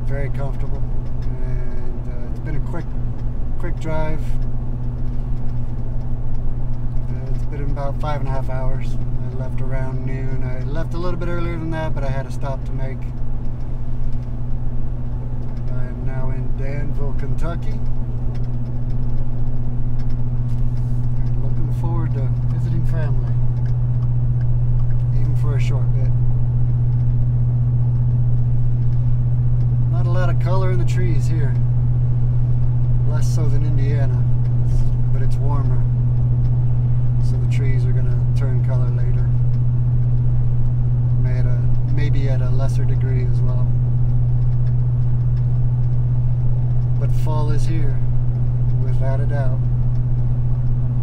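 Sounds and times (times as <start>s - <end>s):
truck engine droning inside cab: 0.0s - 51.0s.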